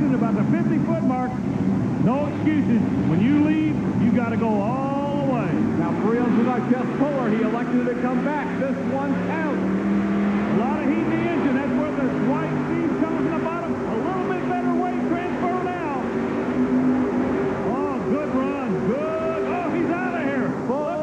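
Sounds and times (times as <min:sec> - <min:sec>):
voices: 0:00.0 - 0:01.4, 0:02.0 - 0:09.8, 0:10.4 - 0:21.0
pulling tractor at full throttle: 0:00.0 - 0:21.0.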